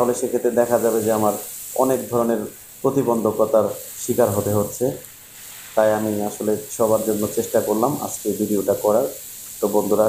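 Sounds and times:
man speaking: 0.0 - 5.0, 5.8 - 10.0
hose spraying water on concrete: 0.0 - 10.0.

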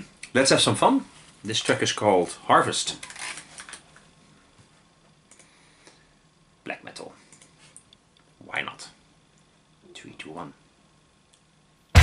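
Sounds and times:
headphones handling clicks and rustling: 3.0 - 4.1.

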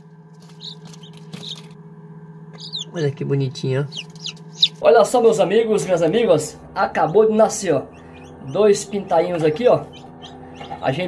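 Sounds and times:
steady low hum: 0.0 - 11.0
chicks peeping: 0.4 - 1.7, 2.5 - 5.0, 7.0 - 11.0.

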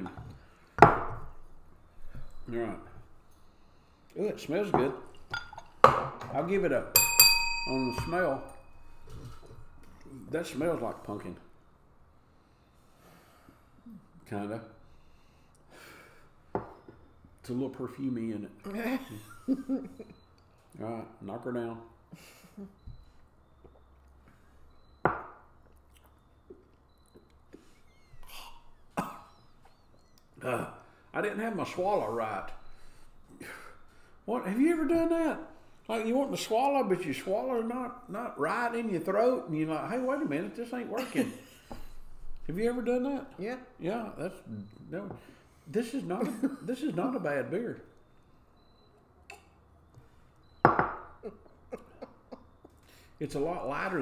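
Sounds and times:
glass clinking on table: 4.7 - 6.3, 6.9 - 9.6, 25.0 - 25.3, 50.6 - 51.1
sharp knocks on a table: 16.5 - 16.8, 25.0 - 25.4, 50.6 - 51.1
man coughing and clearing throat: 29.0 - 29.3.

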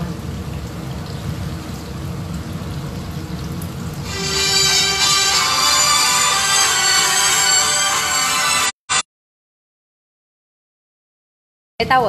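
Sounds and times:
background music: 4.1 - 9.0.

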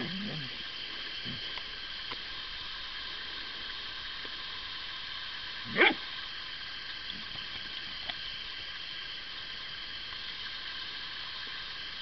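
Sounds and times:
steady high hiss: 0.0 - 12.0
dog yelping: 5.7 - 6.0.

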